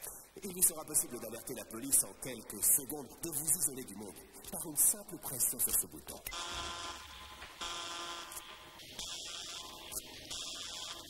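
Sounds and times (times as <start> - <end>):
security alarm buzzer: 6.3 - 11.0.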